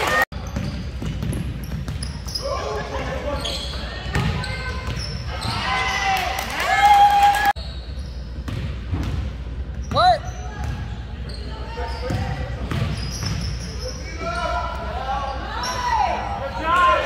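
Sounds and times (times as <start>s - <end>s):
sneaker squeak: 0.3s - 6.2s, 7.6s - 8.8s, 9.7s - 16.3s.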